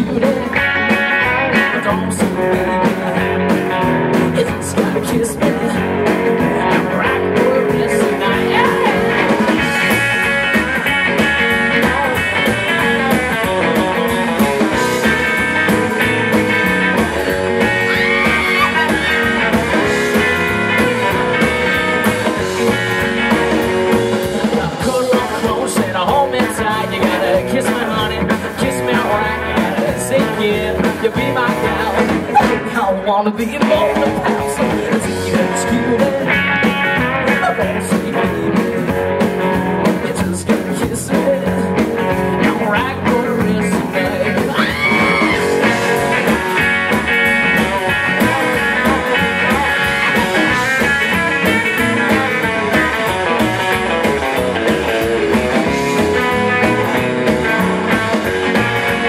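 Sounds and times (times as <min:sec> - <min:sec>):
drum kit: 0:00.0 - 0:59.0
electric guitars: 0:00.0 - 0:59.0
guitar note bending: 0:00.4 - 0:27.0, 0:42.0 - 0:59.0.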